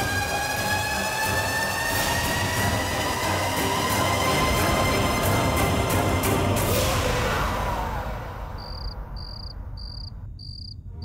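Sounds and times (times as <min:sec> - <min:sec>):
background music: 0:00.0 - 0:09.1
cricket chirping: 0:08.6 - 0:11.0.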